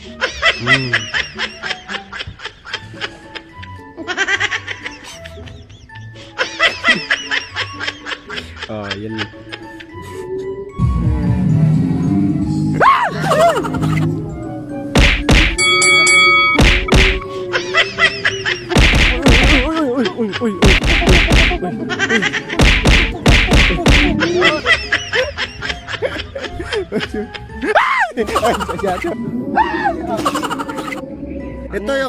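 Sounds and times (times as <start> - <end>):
person laughing high-pitched: 0.4 - 2.0, 13.0 - 14.1, 17.4 - 31.0
hard punch whacks: 15.0 - 15.6, 16.6 - 17.2, 18.8 - 19.7, 20.6 - 21.6, 22.6 - 24.1
bright ringing chord: 15.6 - 17.3.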